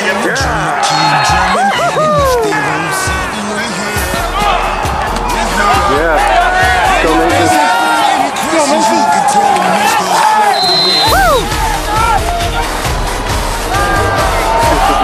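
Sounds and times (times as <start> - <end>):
bass: 0.0 - 7.6, 10.8 - 15.0
crowd cheering: 0.0 - 15.0
music with vocals and beat: 0.0 - 15.0.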